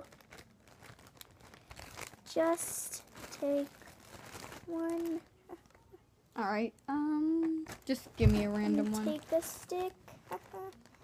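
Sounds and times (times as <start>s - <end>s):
packaging crinkling and rustling: 0.0s - 5.8s, 7.6s - 11.0s.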